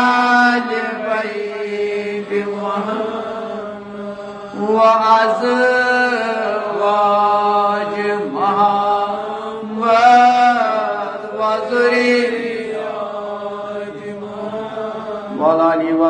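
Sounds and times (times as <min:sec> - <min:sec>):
man chanting melodically: 0:00.0 - 0:16.0.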